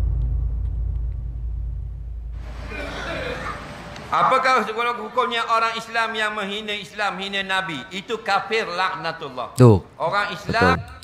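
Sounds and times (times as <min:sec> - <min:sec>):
deep low boom rumble: 0:00.0 - 0:02.5.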